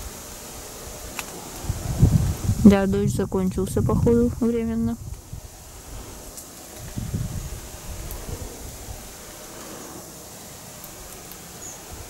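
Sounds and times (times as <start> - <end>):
steady hiss: 0.0 - 12.0
low rumbling bumps: 1.6 - 9.2.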